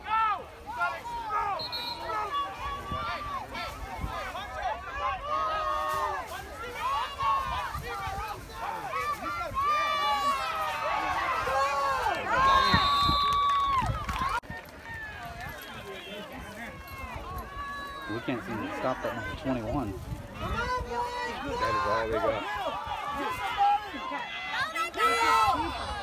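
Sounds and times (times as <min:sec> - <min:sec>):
quiet chatter: 0:00.0 - 0:26.0
spectators shouting and cheering: 0:00.0 - 0:26.0.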